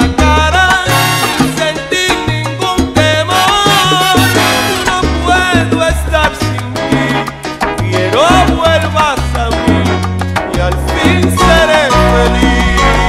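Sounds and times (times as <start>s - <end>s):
salsa music: 0.0s - 13.0s.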